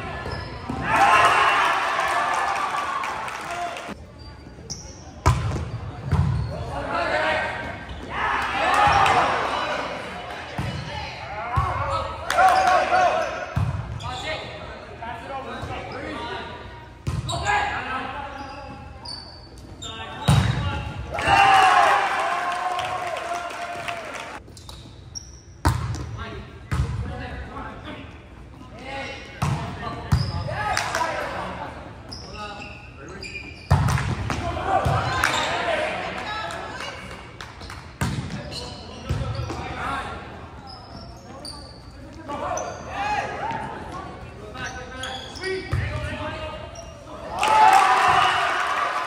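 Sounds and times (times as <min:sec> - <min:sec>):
players and spectators shouting: 0:00.8 - 0:04.0, 0:06.7 - 0:10.2, 0:21.1 - 0:24.4
volleyball hits echoing: 0:33.7 - 0:35.4.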